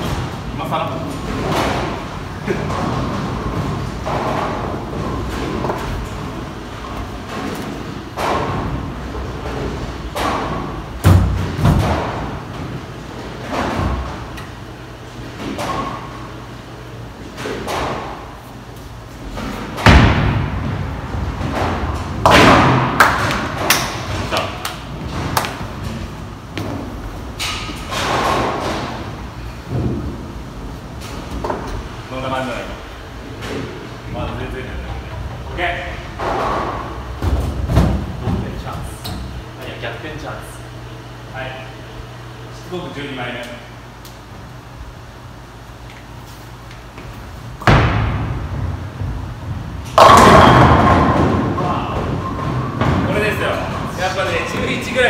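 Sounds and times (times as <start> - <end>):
bowling pins clattering: 0.0 - 14.4, 19.3 - 32.0, 47.5 - 55.0
bowling balls thudding on lane: 19.4 - 26.9, 47.6 - 53.9.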